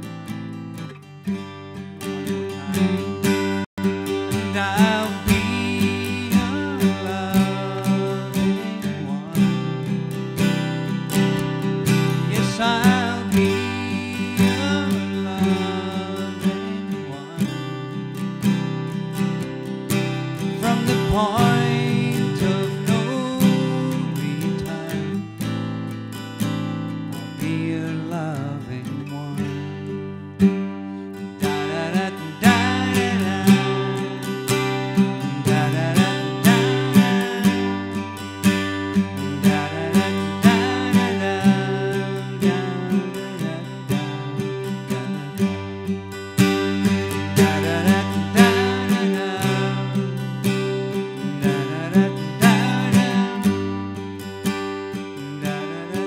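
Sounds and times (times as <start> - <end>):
picked acoustic guitar lead: 0.0 - 56.0
strummed acoustic guitar chords: 0.0 - 56.0.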